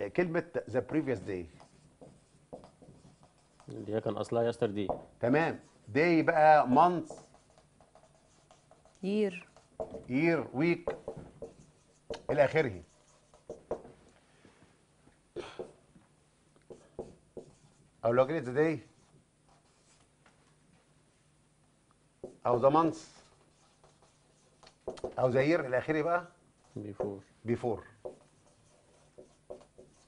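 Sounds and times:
marker pen on whiteboard: 0.0s - 14.1s, 16.6s - 20.6s, 22.2s - 30.0s
marker pen squeaking on whiteboard: 1.0s - 3.8s, 5.5s - 10.1s, 22.9s - 25.2s, 28.0s - 30.0s.

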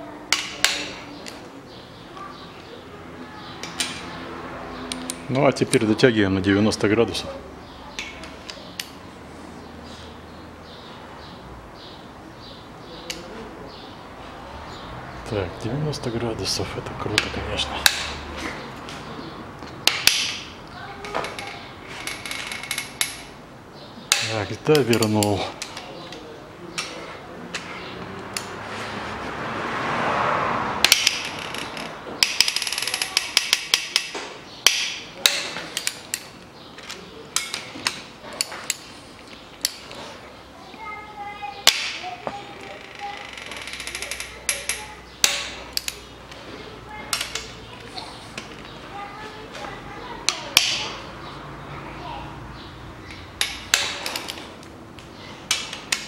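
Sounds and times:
socket wrench clicking on bolts: 43.4s - 46.0s.

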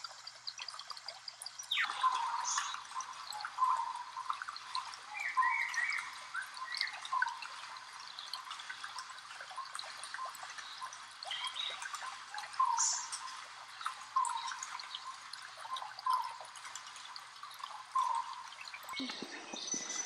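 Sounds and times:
mountain stream trickling: 0.0s - 20.0s.

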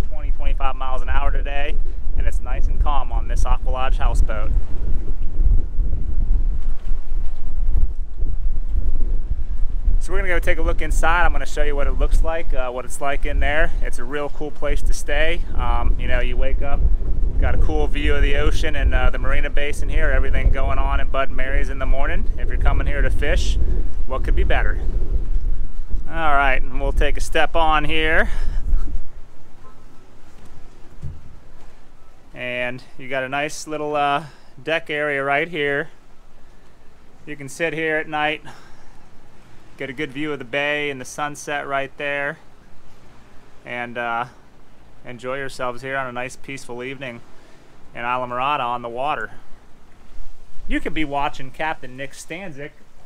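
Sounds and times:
wind rumbling on microphone: 0.0s - 53.0s.

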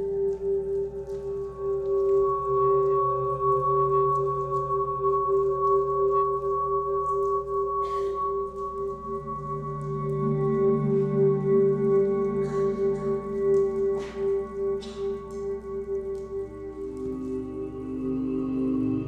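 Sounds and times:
low wavering drone: 0.0s - 19.0s.

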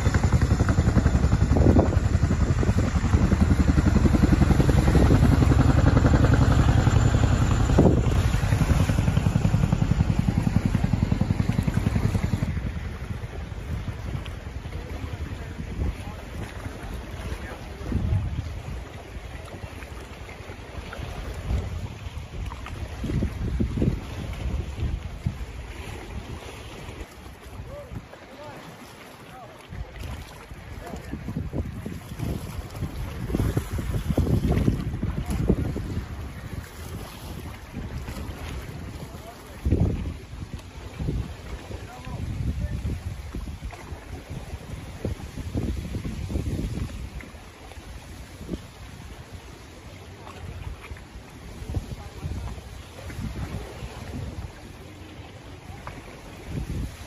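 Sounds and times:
wind buffeting microphone: 0.0s - 28.2s, 29.7s - 57.0s
choppy river water: 0.0s - 57.0s.

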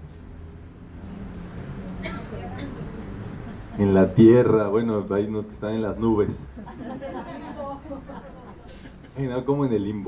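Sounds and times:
people chattering softly: 1.9s - 4.2s.

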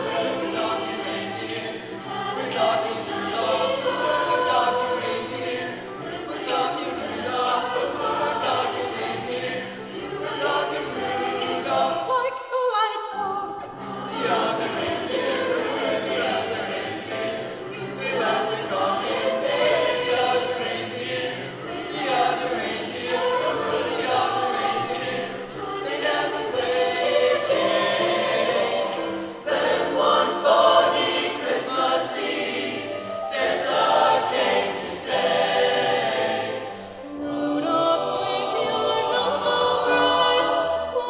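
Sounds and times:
choir singing: 0.0s - 41.0s.

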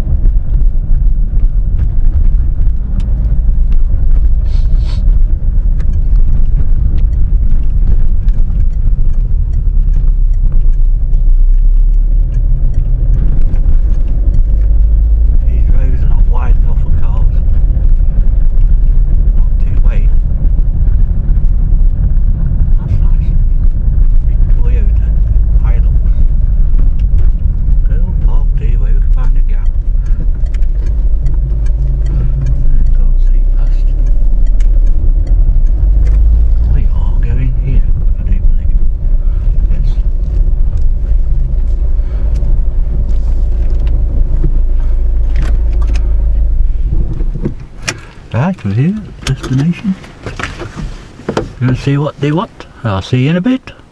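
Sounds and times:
car engine and tyre rumble: 0.0s - 53.9s.

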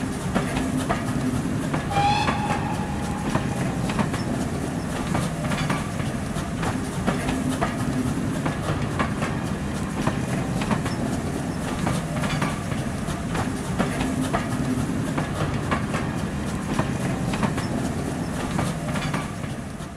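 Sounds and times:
train wheels rumbling on track: 0.0s - 19.9s.

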